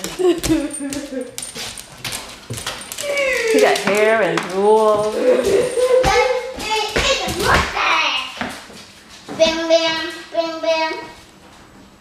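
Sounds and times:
dogs scuffling in play: 0:00.1 - 0:10.2
dog whining: 0:02.8 - 0:03.8.

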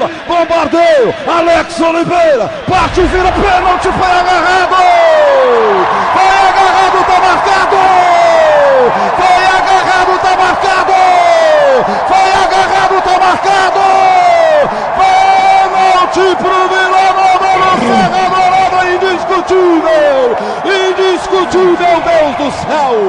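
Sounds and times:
commentator shouting goal: 0:00.0 - 0:23.0
stadium crowd noise: 0:00.0 - 0:23.0.

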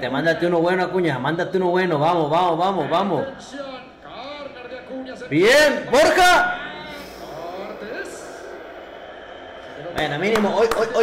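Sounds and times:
faint televised football commentary: 0:00.0 - 0:11.0.

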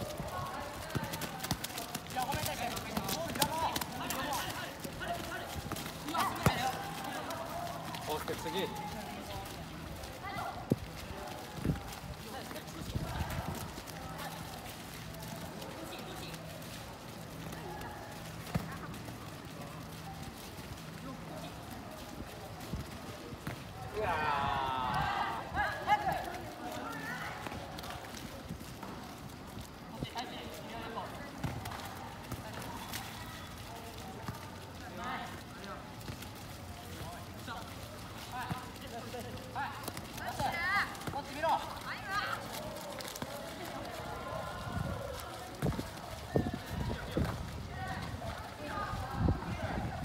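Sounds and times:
soccer ball kicks: 0:00.0 - 0:20.4, 0:21.7 - 0:24.2, 0:27.3 - 0:33.2, 0:33.8 - 0:48.7
running footsteps on wet dirt: 0:00.0 - 0:50.0
football being kicked: 0:05.1 - 0:06.8.

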